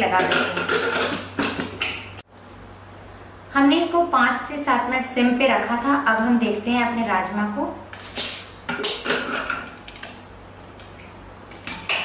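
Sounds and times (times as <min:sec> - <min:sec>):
metal lid clicks and scrapes: 0:00.2 - 0:02.0.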